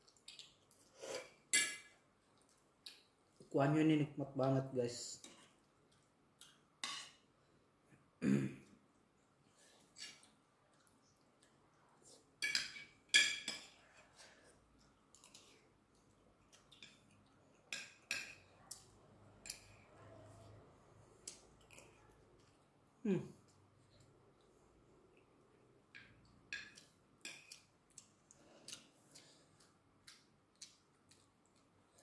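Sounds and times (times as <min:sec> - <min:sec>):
cutlery clinking on plates: 0:12.4 - 0:13.8.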